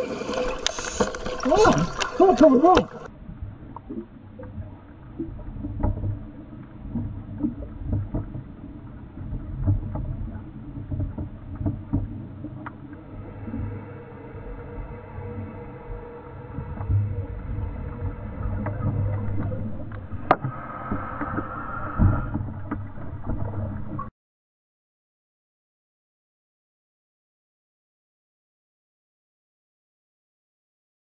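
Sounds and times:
underwater regulator bubbles: 0.0 - 3.1, 9.3 - 24.1.

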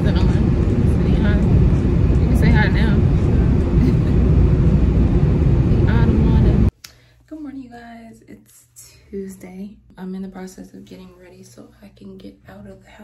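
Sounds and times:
woman's voice: 0.0 - 4.4, 5.6 - 13.0
low rumble inside car cabin: 0.0 - 6.7.

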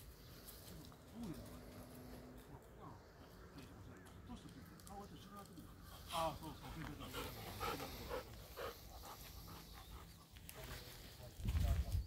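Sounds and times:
dog panting softly: 5.5 - 10.7.

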